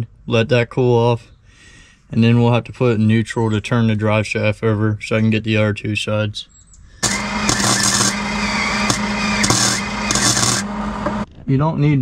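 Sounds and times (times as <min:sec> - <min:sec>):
sharp pops: 0:07.0 - 0:11.2
welding arc crackling: 0:07.0 - 0:11.3.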